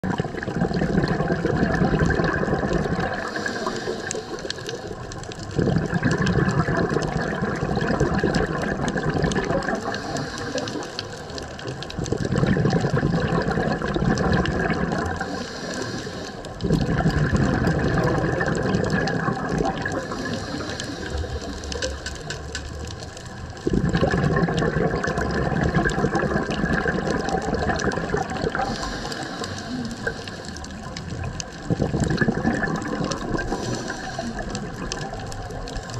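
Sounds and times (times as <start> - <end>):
exhaled bubbles rushing: 0.0 - 35.9
regulator inhalation hiss: 3.2 - 5.0, 9.8 - 11.2, 15.2 - 16.6, 20.0 - 22.1, 28.6 - 30.7, 33.4 - 34.5.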